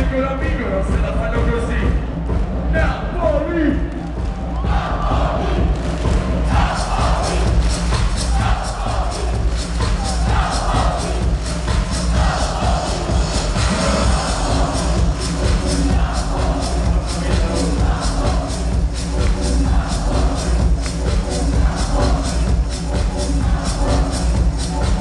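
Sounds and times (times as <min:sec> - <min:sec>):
loud club dance music: 0:00.0 - 0:25.0
crowd shouting along: 0:04.2 - 0:05.8, 0:06.4 - 0:11.3, 0:12.0 - 0:18.7.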